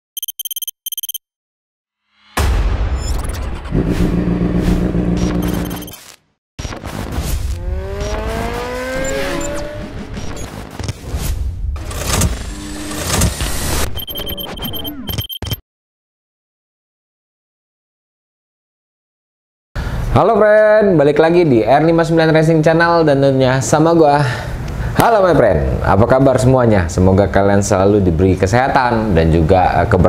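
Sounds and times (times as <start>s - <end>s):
rapid high-pitched electronic beeps: 0.2s - 1.2s, 5.2s - 6.0s, 7.9s - 10.6s, 13.8s - 15.6s
vehicle engine sounds: 3.7s - 5.9s, 7.5s - 10.7s.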